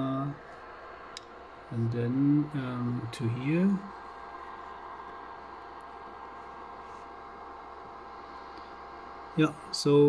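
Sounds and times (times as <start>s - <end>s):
background hiss: 0.0s - 10.0s
faint steady hum: 0.0s - 10.0s.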